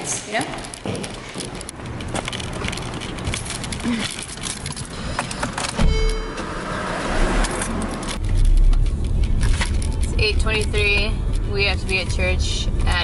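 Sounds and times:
car keys jangling: 0:00.6 - 0:06.5, 0:07.4 - 0:13.0
car engine starting and running: 0:01.8 - 0:13.0.

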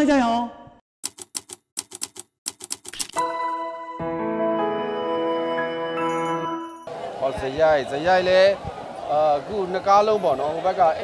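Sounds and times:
typewriter key clicks: 0:01.0 - 0:03.2.

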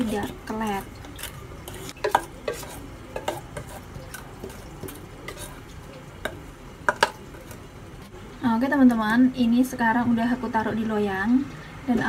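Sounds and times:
spatula scraping batter in bowl: 0:00.0 - 0:07.7.

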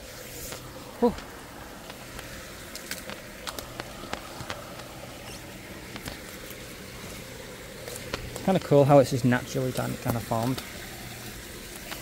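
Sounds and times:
footsteps through undergrowth: 0:00.0 - 0:08.8
twigs snapping: 0:00.5 - 0:07.2, 0:07.8 - 0:08.7.

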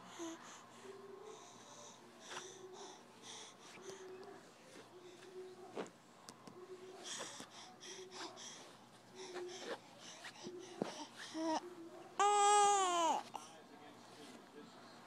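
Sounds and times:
baby breathy vocal sounds: 0:00.0 - 0:04.2, 0:07.0 - 0:11.6.

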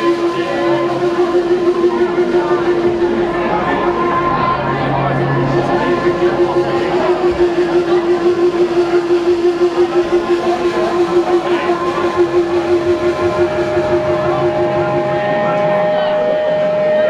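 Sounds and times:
electric guitar sustained note: 0:00.0 - 0:17.0
live band playing: 0:00.0 - 0:17.0.

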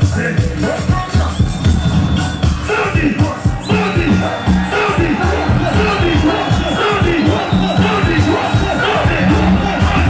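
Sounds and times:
crowd shouting and cheering: 0:00.0 - 0:10.0
loud music with heavy bass beat: 0:00.0 - 0:10.0.

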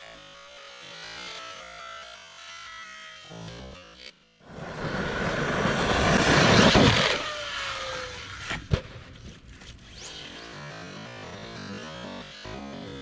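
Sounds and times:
electric motor whining: 0:04.5 - 0:08.6.

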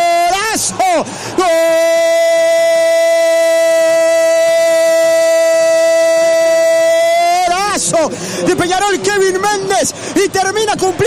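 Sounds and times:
commentator's drawn-out goal cry: 0:00.0 - 0:11.0.

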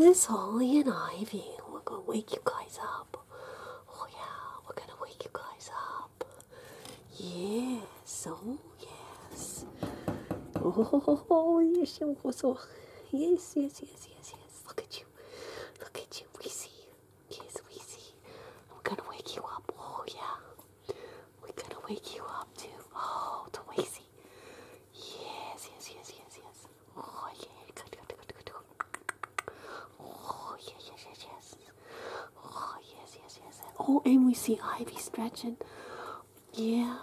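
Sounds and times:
person whispering: 0:00.0 - 0:06.5, 0:07.1 - 0:09.8, 0:15.8 - 0:20.6, 0:25.0 - 0:31.8, 0:32.4 - 0:35.6.

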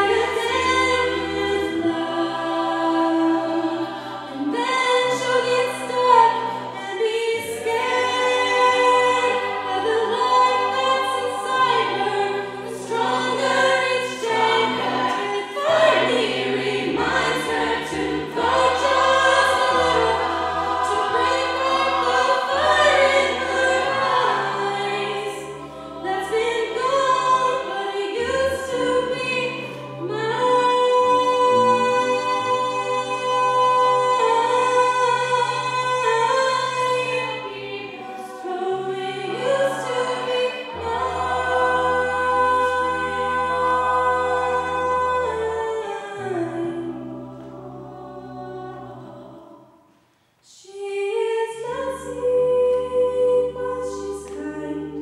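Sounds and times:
sustained backing vocal chords: 0:00.0 - 0:49.8.

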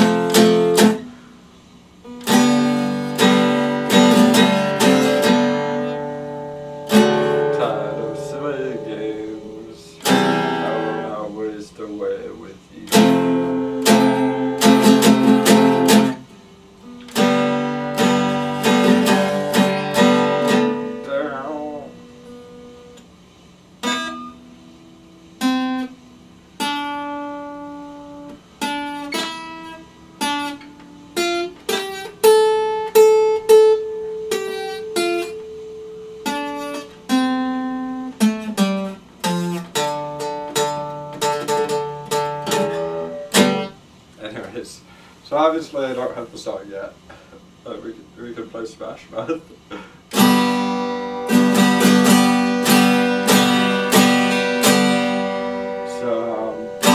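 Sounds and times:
acoustic guitar strummed chords: 0:00.0 - 0:46.3, 0:46.9 - 0:56.9
guitar single notes picked: 0:02.0 - 0:11.5, 0:12.2 - 0:23.2, 0:23.8 - 0:44.6, 0:49.6 - 0:56.9.

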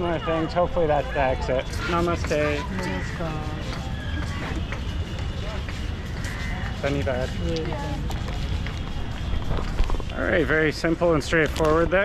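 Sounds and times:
faint voices: 0:00.0 - 0:12.0
wind rumble on microphone: 0:02.2 - 0:12.0.

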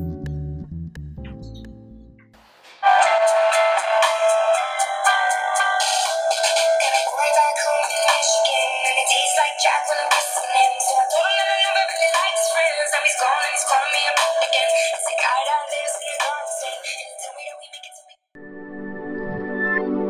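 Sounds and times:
pop song through small speaker: 0:02.4 - 0:18.2.

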